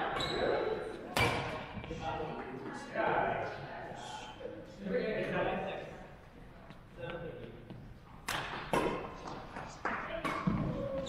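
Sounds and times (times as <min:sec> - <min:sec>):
racket striking shuttlecock: 0:08.2 - 0:10.7
people's voices: 0:09.0 - 0:11.0.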